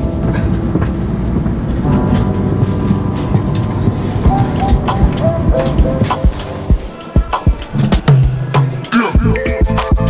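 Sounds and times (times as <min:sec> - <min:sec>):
train rumbling: 0:00.0 - 0:08.9
background music: 0:00.0 - 0:10.0.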